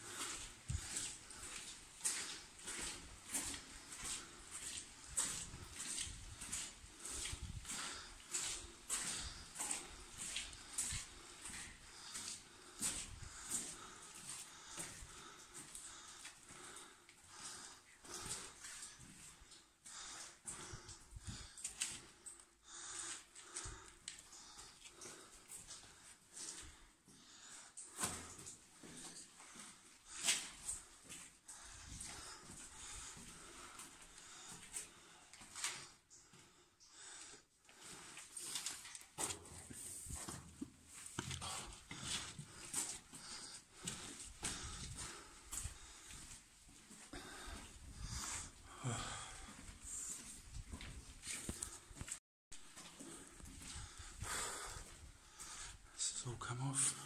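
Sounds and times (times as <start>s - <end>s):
footsteps and scuffs: 0.0s - 22.3s, 27.8s - 36.2s, 37.7s - 55.9s
person breathing hard: 0.0s - 40.5s, 41.2s - 56.2s.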